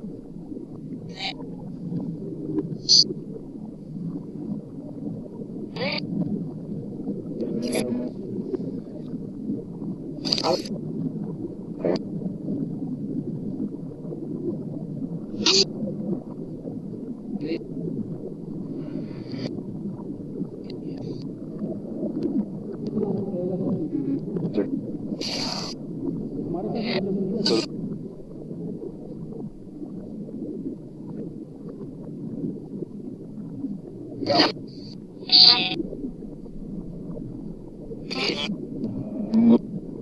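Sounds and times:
short sharp hisses: 25.2 - 25.7
garbled reversed speech murmur: 26.7 - 27.7, 38.1 - 38.5.

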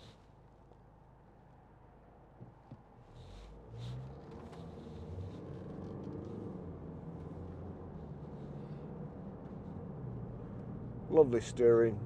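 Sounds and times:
road rumble: 0.0 - 12.0.

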